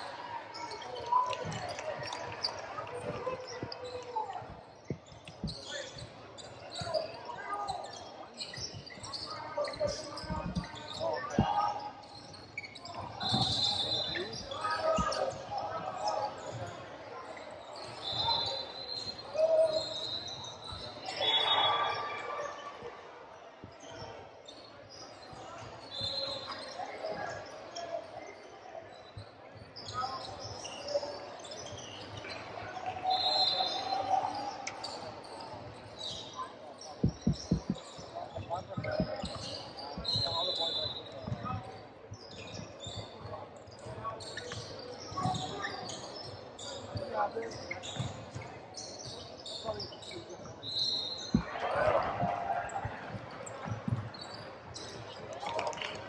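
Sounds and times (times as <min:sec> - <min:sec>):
shoe squeaks: 0:00.5 - 0:22.0, 0:23.8 - 0:28.0, 0:28.9 - 0:52.2, 0:53.1 - 0:55.4.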